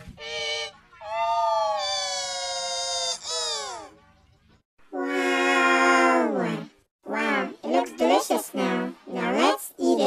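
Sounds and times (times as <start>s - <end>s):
pitch-shifted voice held note: 5.0s - 7.5s.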